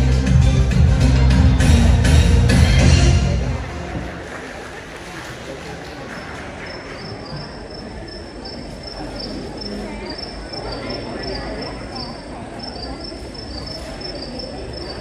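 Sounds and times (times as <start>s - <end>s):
crickets chirping: 6.6s - 15.0s.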